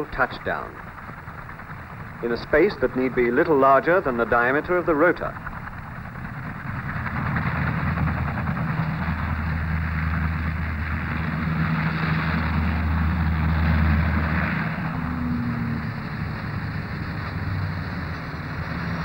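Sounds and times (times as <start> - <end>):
aircraft engines and rotor droning: 0.0 - 19.0.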